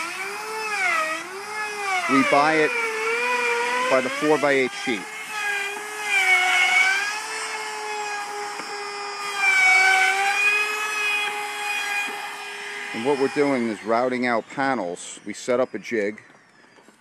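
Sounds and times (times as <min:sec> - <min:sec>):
router cutting wood: 0:00.0 - 0:17.0.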